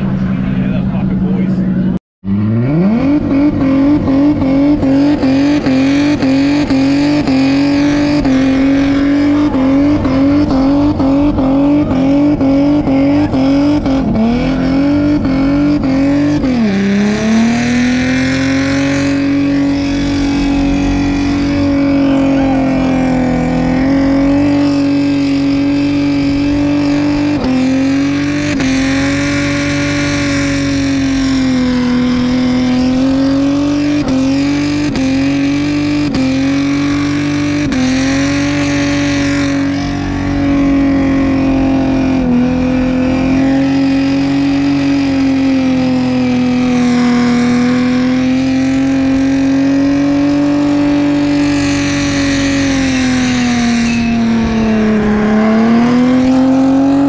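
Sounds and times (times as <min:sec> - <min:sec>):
car engine at high revs: 0:00.0 - 0:57.0.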